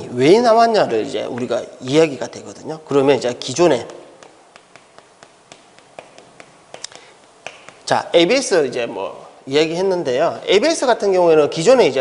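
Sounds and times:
chalk tapping on chalkboard: 0:01.2 - 0:01.6, 0:03.5 - 0:08.0.

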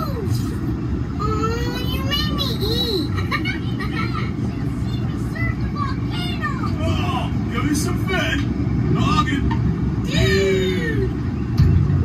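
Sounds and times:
low cabin rumble: 0:00.0 - 0:12.0.

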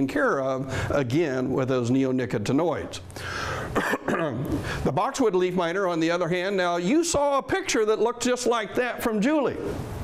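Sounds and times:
man clearing his throat: 0:03.8 - 0:04.6.

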